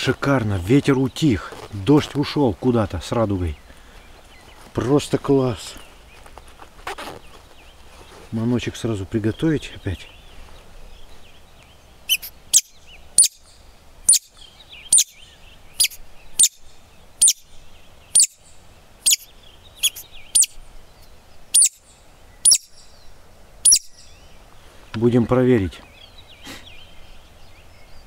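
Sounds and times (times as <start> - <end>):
bird call lure chirps: 12.1 - 17.5, 18.1 - 18.4, 19.0 - 20.6, 21.6 - 21.8, 22.4 - 23.0, 23.6 - 24.2.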